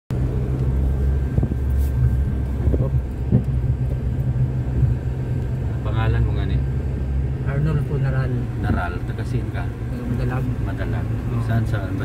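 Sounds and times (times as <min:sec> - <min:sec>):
car engine and tyres rumble: 0:00.1 - 0:12.0.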